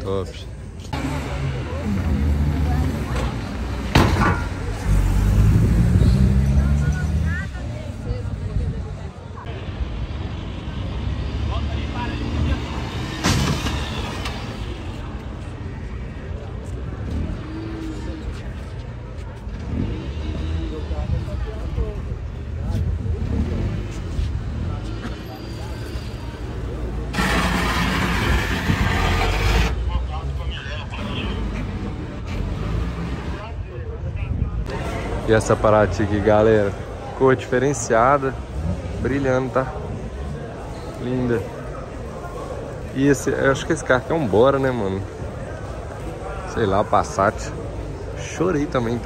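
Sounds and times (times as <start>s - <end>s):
car engines low rumble: 0.0s - 49.0s
loud rushing burst: 27.1s - 29.8s.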